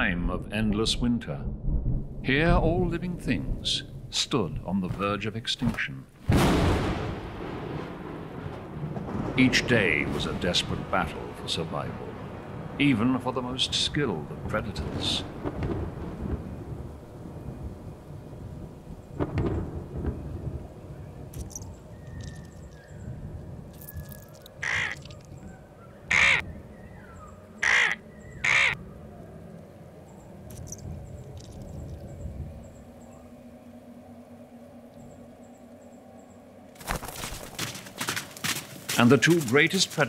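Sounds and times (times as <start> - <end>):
thunder rumbling: 1.3 - 5.0, 6.2 - 35.5
crow cawing: 24.3 - 25.2, 26.1 - 26.4, 27.6 - 28.8.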